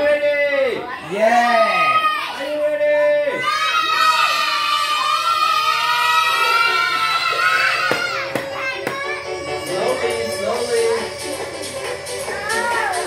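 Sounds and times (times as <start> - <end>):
children shouting and cheering: 0.6 - 13.0.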